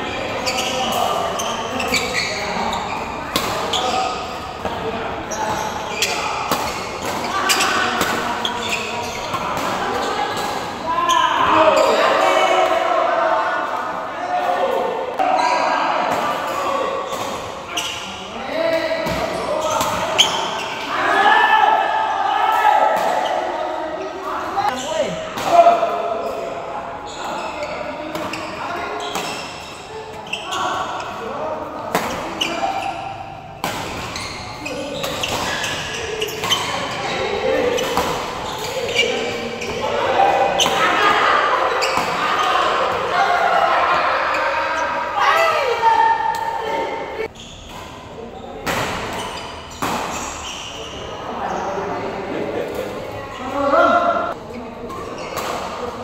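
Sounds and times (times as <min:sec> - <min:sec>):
people's voices: 0:00.0 - 0:47.3.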